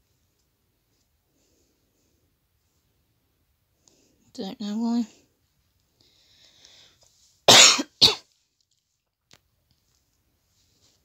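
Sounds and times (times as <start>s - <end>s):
woman coughing: 7.5s - 8.2s.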